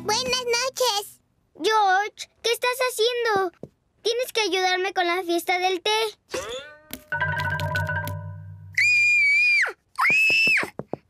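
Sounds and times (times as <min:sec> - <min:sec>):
cartoon girl screaming: 0:08.8 - 0:10.7.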